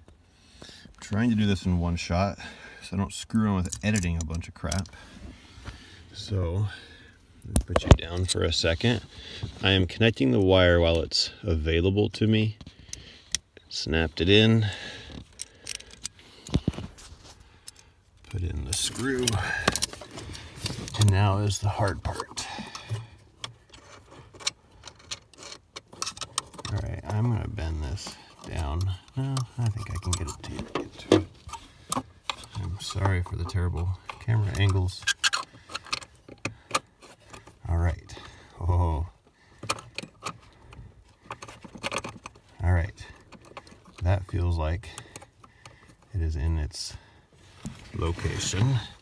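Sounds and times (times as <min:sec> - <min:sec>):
small metal and plastic clicks: 0:22.7 - 0:26.8, 0:39.6 - 0:42.5.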